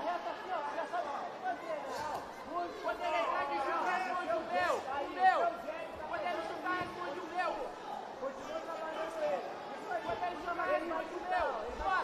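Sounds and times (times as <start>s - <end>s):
voices shouting and talking: 0.0s - 12.0s.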